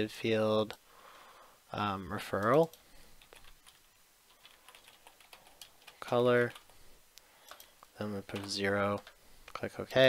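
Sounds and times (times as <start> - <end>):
keyboard typing: 2.3 - 6.7, 7.4 - 9.2.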